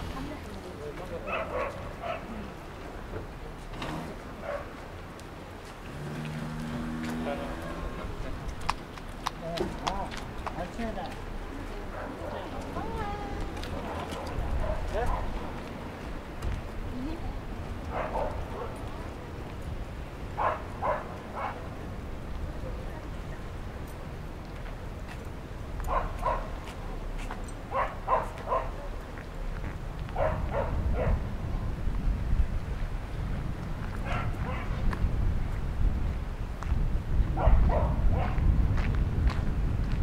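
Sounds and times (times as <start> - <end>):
dog barking: 1.3 - 2.3, 4.4 - 4.7, 13.9 - 15.3, 17.9 - 18.8, 20.4 - 21.6, 25.9 - 26.6, 27.7 - 28.9, 30.2 - 31.2, 34.0 - 34.8, 37.4 - 38.4
footsteps on concrete: 31.9 - 37.0, 38.2 - 40.0.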